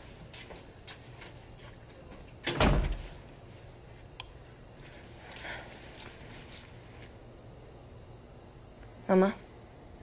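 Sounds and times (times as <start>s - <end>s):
door shutting with heavy thud: 2.4s - 3.1s.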